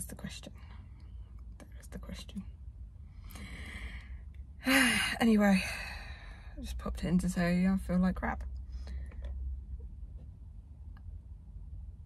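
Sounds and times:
woman speaking: 0:00.0 - 0:00.6, 0:01.7 - 0:02.5, 0:04.7 - 0:06.0, 0:06.6 - 0:08.4
woman sighing: 0:04.6 - 0:06.0.

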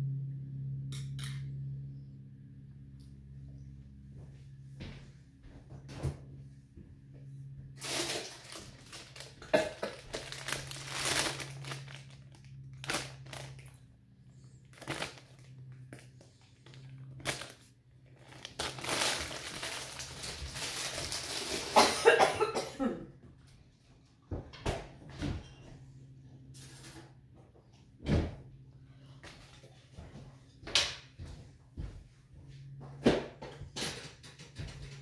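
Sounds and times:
plastic bag rustling: 0:07.8 - 0:22.2
kitchen things clicking and knocking: 0:33.0 - 0:35.0.

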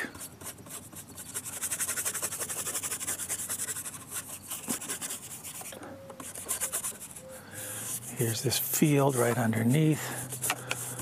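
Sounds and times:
paintbrush scrubbing on board: 0:00.0 - 0:11.0.

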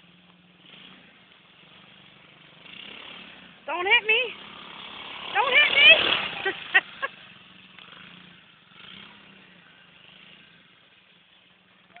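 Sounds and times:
small atv engine running: 0:00.0 - 0:12.0.

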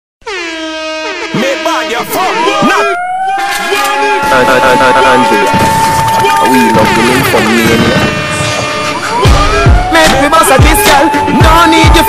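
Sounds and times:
air horn blast: 0:00.2 - 0:11.8.

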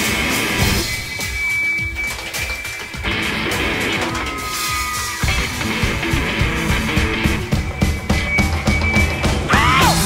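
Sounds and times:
drum beat: 0:00.6 - 0:10.0.

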